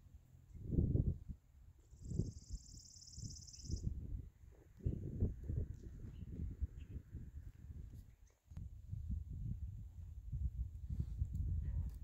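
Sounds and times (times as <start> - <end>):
wind buffeting microphone: 0.5 - 12.0.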